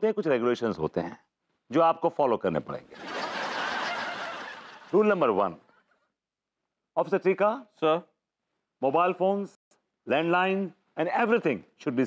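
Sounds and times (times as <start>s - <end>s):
laugh track audience laughter: 3.0s - 5.0s.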